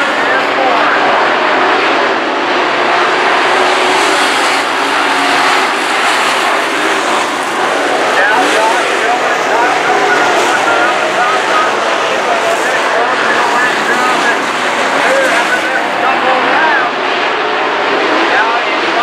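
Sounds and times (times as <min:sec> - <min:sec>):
race car engines roaring: 0:00.0 - 0:19.0.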